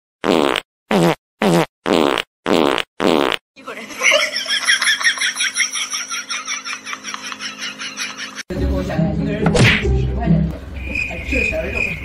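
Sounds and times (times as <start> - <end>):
fart sound effects: 0.2 - 3.4.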